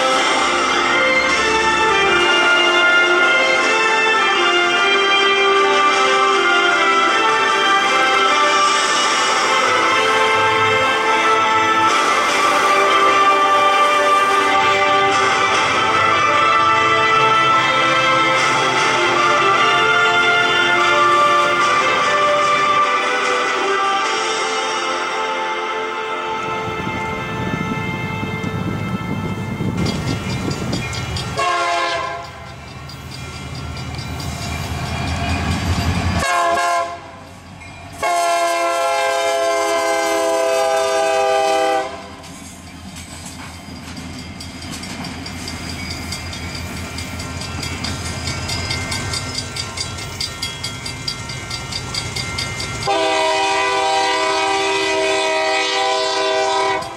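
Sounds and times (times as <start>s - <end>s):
diesel locomotive engine rumble: 0.0s - 56.9s
locomotive air horn blasts: 9.9s - 17.8s, 31.4s - 32.4s, 36.2s - 37.3s, 38.0s - 42.2s, 52.8s - 56.9s
wheels clattering on rails: 29.6s - 36.2s, 42.2s - 53.0s.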